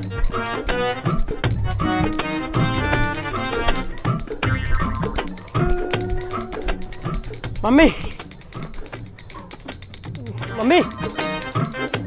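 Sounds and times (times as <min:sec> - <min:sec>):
man calling out: 0:05.7 - 0:08.2, 0:10.2 - 0:11.5.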